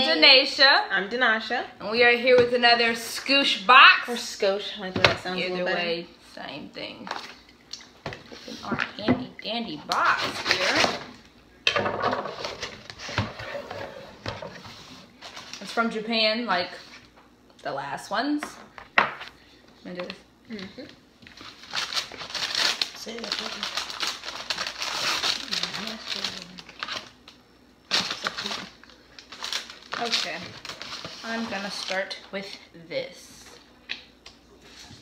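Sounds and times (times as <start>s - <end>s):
packing paper rustling and crinkling: 14.5s - 16.0s, 21.3s - 32.6s.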